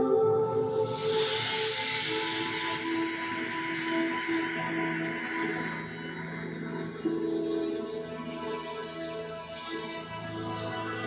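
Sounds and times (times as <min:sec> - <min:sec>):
soundtrack music with held tones: 0:00.0 - 0:11.0.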